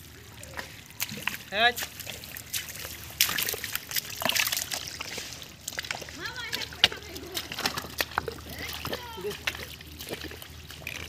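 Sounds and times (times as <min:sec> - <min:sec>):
splashing in muddy water: 0:00.0 - 0:11.0
voices calling: 0:04.8 - 0:10.9.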